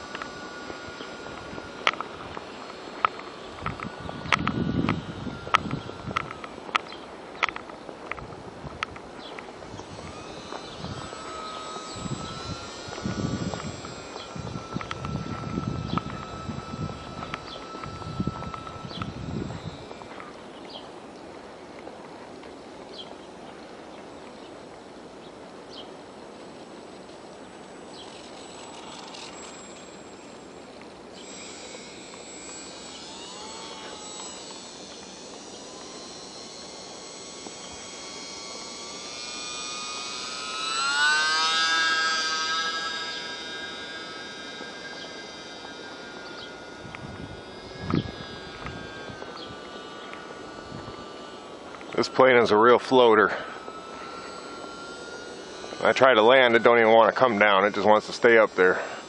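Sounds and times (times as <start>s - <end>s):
model plane motor whining: 0.0s - 59.0s.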